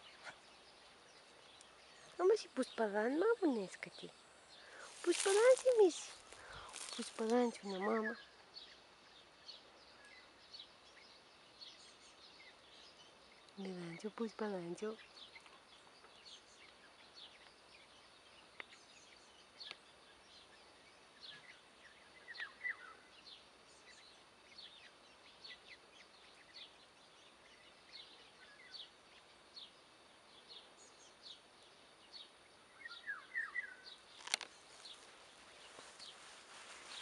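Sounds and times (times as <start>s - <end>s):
outdoor background noise: 0.0s - 37.0s
small birds chirping: 0.0s - 37.0s.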